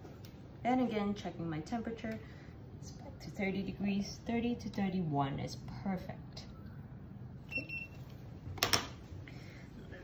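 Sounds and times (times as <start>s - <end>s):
thermometer electronic beep: 7.5s - 8.0s.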